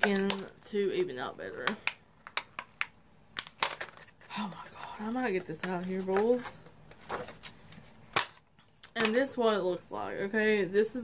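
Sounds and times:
packaging rustling: 3.4 - 8.9.

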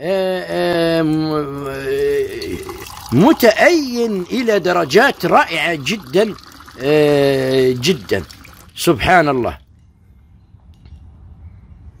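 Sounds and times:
water pouring into clay cup: 0.6 - 9.4.

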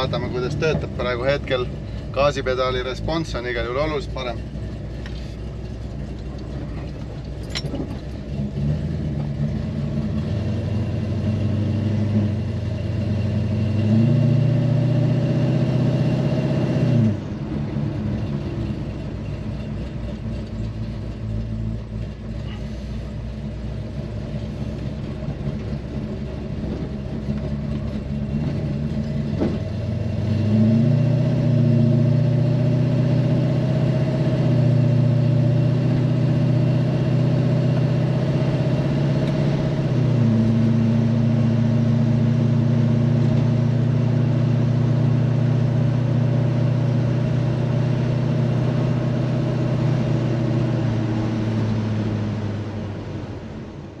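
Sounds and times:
car engine while driving: 0.0 - 54.0.

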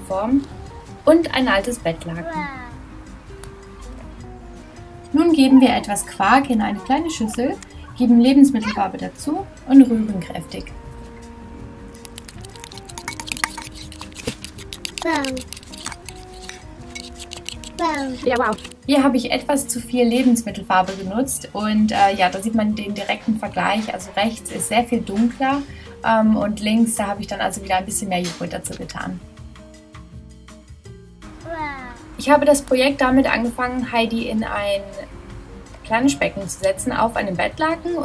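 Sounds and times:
light background music: 0.0 - 38.0
fork scraping ceramic bowl: 12.0 - 18.8.

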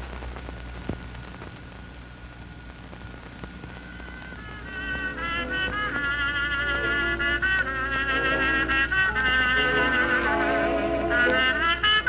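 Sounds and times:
steady low hum: 0.0 - 12.0
brass music with vibrato: 4.1 - 12.0.

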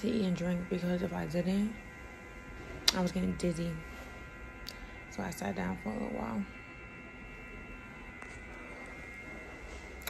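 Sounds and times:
faint electrical hum: 0.0 - 10.0
thin high whine: 0.0 - 10.0.

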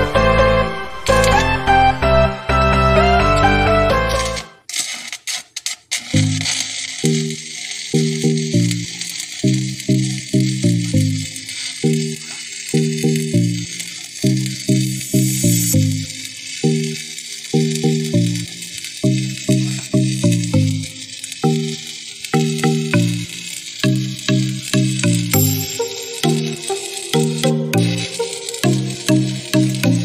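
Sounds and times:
welding arc crackling: 1.0 - 1.6, 3.0 - 30.0
background music with bass line: 27.2 - 30.0.

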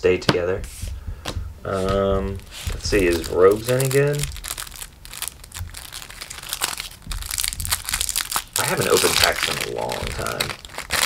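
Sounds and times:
plastic wrapping crinkling: 1.8 - 11.0.

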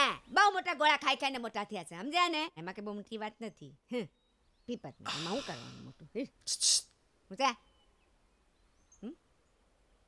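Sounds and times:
faint high bird chirps: 3.2 - 10.0.

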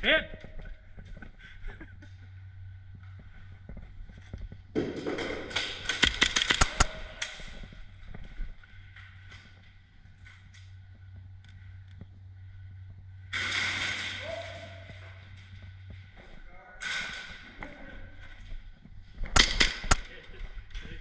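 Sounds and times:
airsoft gun shots: 5.2 - 7.1, 19.3 - 20.1.

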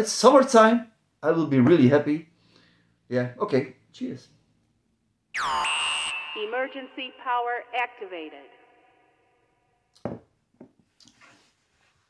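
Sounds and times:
glass knocking on wooden table: 10.0 - 10.7.

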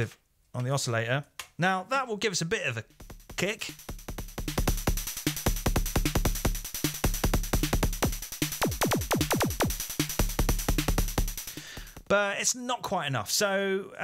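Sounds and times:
noisy pitch-modulated hi-hat: 2.9 - 12.1
pitch-dropping synth kick drum: 3.0 - 12.1
snare drum: 3.0 - 12.1.

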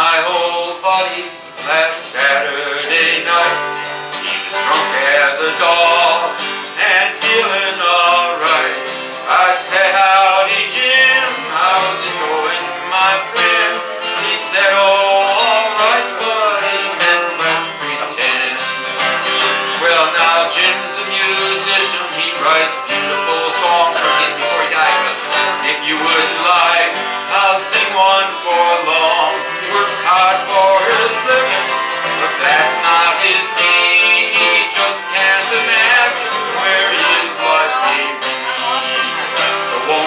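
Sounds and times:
acoustic guitars playing: 0.0 - 40.0.

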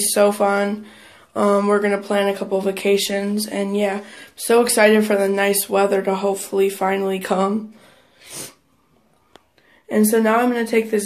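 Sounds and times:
breathy puff of air: 7.8 - 8.7.

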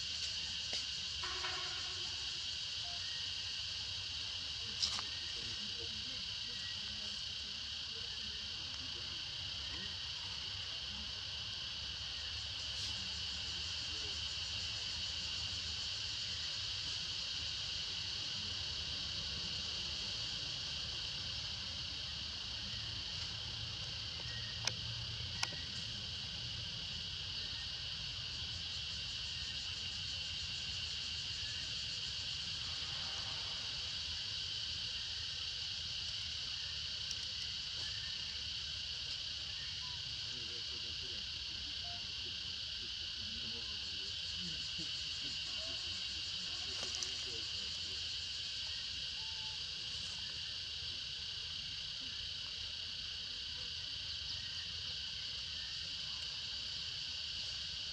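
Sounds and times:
insect chorus droning: 0.0 - 57.9.

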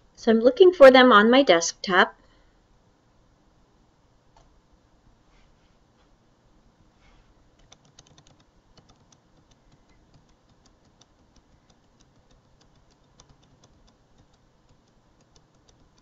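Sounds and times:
keyboard keys tapping: 7.6 - 16.0.

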